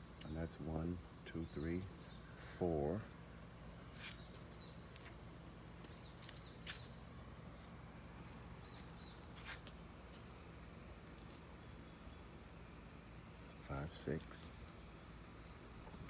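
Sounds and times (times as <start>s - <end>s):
insects chirring: 0.0s - 16.0s.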